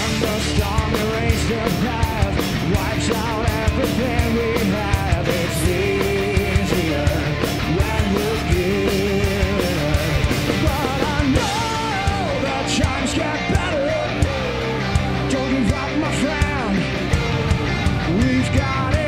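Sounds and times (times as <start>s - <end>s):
drums steady beat: 0.0s - 19.0s
heavy rock band playing: 0.0s - 19.0s
man singing: 0.0s - 19.0s.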